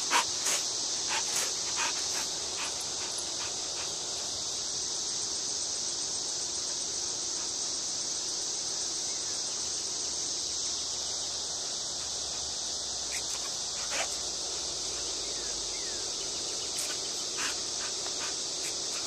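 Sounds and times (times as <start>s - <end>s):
insects chorus: 0.0s - 19.0s.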